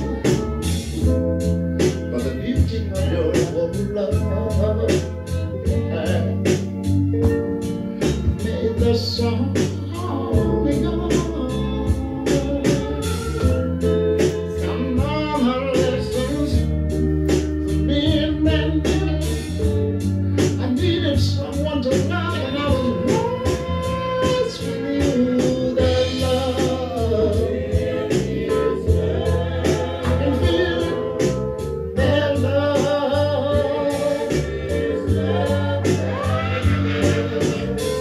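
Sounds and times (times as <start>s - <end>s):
man singing soul song: 0.0s - 6.9s, 7.6s - 38.0s
backing music with steady beat: 0.0s - 38.0s.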